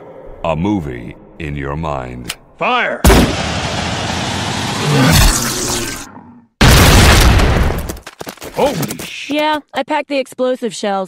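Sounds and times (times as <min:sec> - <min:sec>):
heavy explosions: 0:03.0 - 0:05.4, 0:06.6 - 0:07.9.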